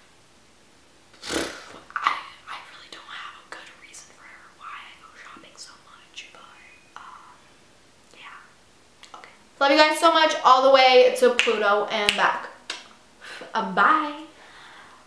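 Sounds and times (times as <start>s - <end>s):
woman whispering: 2.0s - 7.4s, 8.1s - 8.5s.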